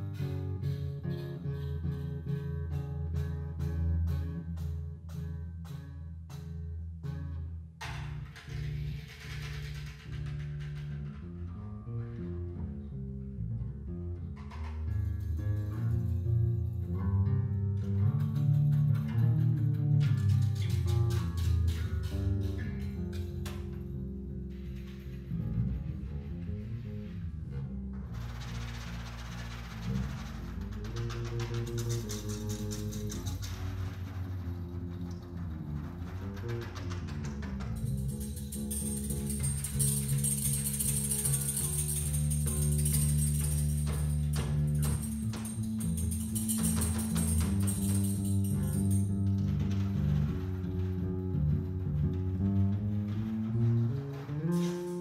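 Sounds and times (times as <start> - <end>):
electric bass guitar: 0.0 - 55.0
sharp ticks: 28.2 - 51.0.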